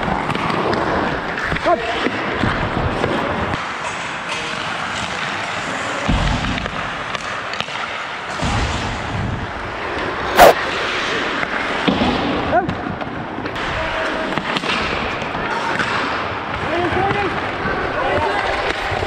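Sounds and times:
clatter of sticks and puck: 0.0 - 19.0
skates scraping on ice: 9.8 - 12.0.

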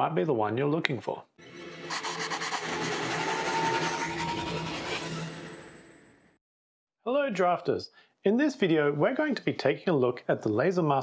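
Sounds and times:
dense scratchy noise: 1.9 - 5.9.

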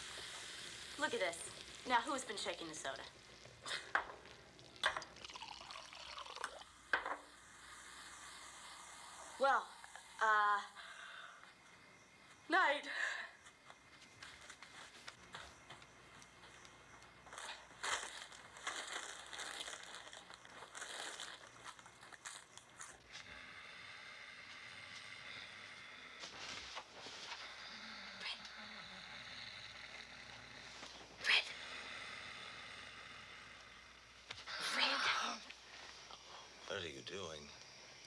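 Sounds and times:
packaging rustling and crinkling: 17.8 - 23.0.

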